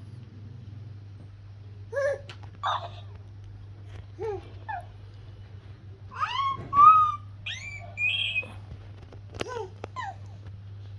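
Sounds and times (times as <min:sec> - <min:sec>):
steady low hum: 0:00.0 - 0:10.9
high-pitched squeaky vocal sounds: 0:06.2 - 0:08.6.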